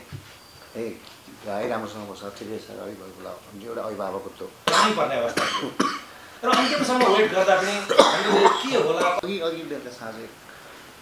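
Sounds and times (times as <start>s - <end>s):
man speaking: 0.8s - 10.4s
man coughing: 4.7s - 9.2s.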